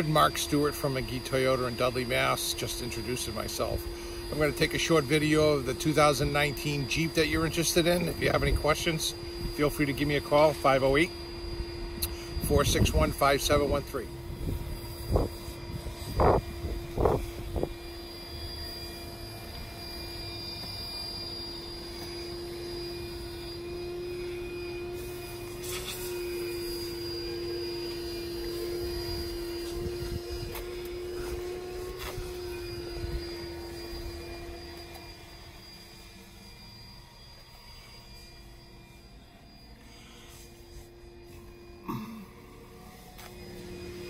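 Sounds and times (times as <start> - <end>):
steady mechanical hum: 0.0 - 44.0.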